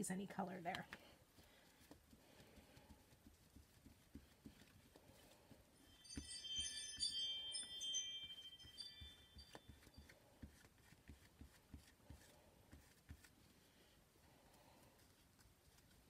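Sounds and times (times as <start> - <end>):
chime of high ringing tones: 5.8 - 10.1.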